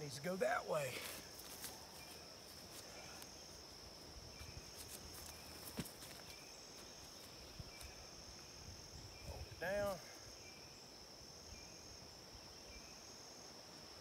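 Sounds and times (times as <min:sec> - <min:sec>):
insects droning: 0:00.0 - 0:14.0.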